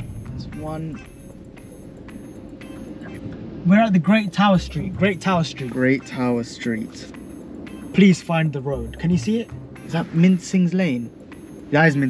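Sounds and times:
road rumble inside car: 0.0s - 12.0s.

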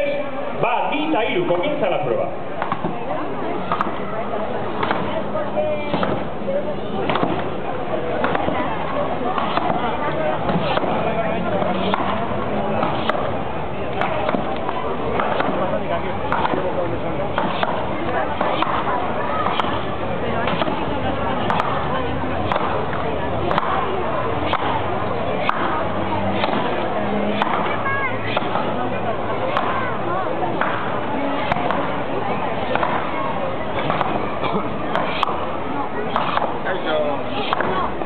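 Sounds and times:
crowd chatter: 0.0s - 38.0s
axes chopping logs: 2.6s - 3.0s, 3.7s - 4.0s, 4.8s - 5.2s, 5.8s - 6.3s, 7.0s - 7.5s, 8.2s - 11.0s, 11.6s - 28.8s, 29.5s - 29.9s, 30.5s - 32.0s, 32.6s - 35.5s, 36.1s - 36.7s, 37.4s - 38.0s.

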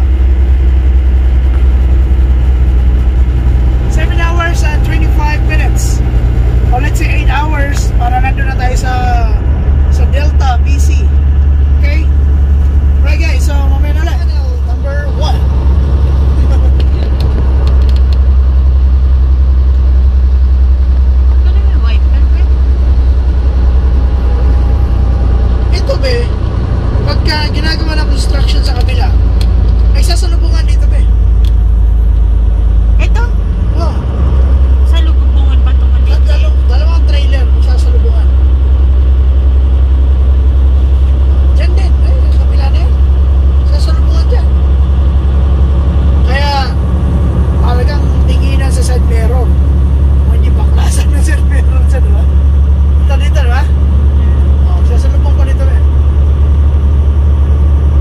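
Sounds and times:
road noise inside cab: 0.0s - 58.0s
truck engine drone: 0.0s - 58.0s
people talking: 3.9s - 6.0s, 6.7s - 11.2s, 11.8s - 12.2s, 13.0s - 15.6s, 16.3s - 18.0s, 21.4s - 22.6s, 25.6s - 26.4s, 27.0s - 29.2s, 29.9s - 31.2s, 33.0s - 34.2s, 34.8s - 38.4s, 41.4s - 43.0s, 43.6s - 44.6s, 46.2s - 46.8s, 47.6s - 49.6s, 50.2s - 52.4s, 53.0s - 55.9s.

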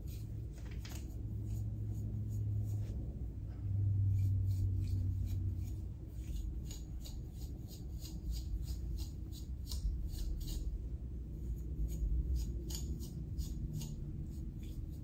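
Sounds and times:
comb scratching through wig hair: 0.0s - 3.2s, 4.0s - 15.0s
low steady hum: 0.0s - 15.0s.

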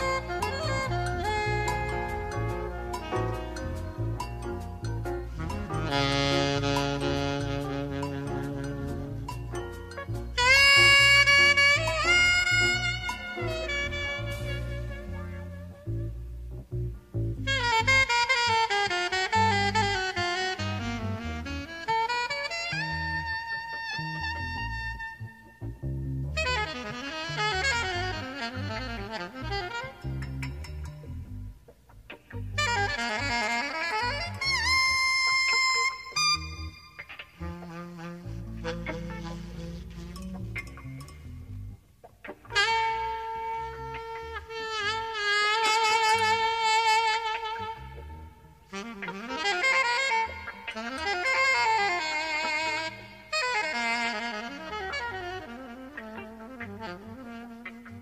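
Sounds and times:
big band bass notes: 0.0s - 58.0s
jazz saxophone solo: 0.0s - 58.0s.

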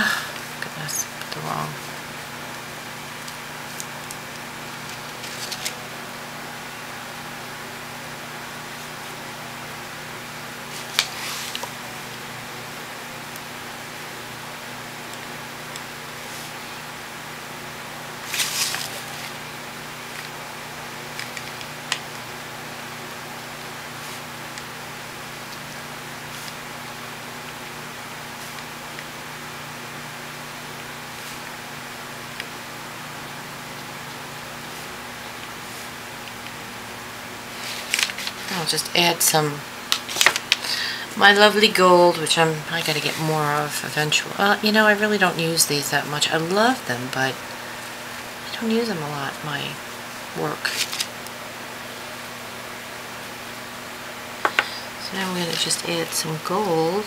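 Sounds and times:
faint constant hum: 0.0s - 57.0s
paper rustling and tapping: 39.9s - 40.6s.

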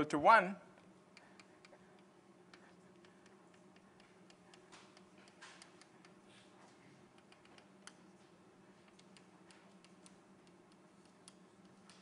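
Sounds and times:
low room hum: 0.0s - 12.0s
chalk ticking on blackboard: 1.2s - 6.3s, 8.8s - 12.0s.

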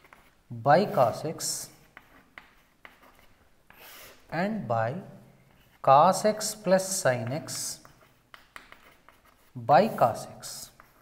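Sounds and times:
chalk writing on chalkboard: 0.0s - 4.3s, 5.5s - 11.0s.

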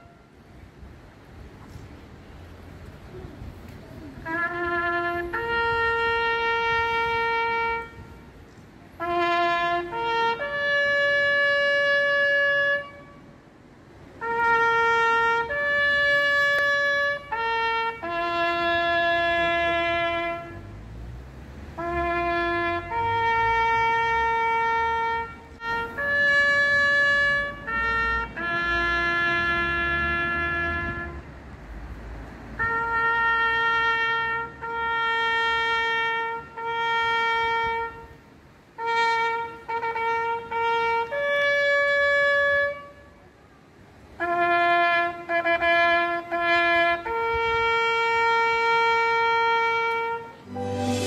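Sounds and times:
trumpet playing military call: 0.0s - 0.4s, 4.2s - 8.4s, 9.0s - 13.4s, 14.1s - 20.8s, 21.7s - 31.3s, 32.6s - 38.2s, 38.8s - 43.2s, 44.1s - 51.0s.

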